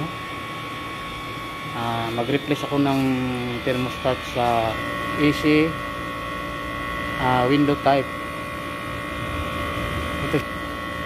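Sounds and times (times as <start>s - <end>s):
air conditioner humming: 0.0s - 11.0s.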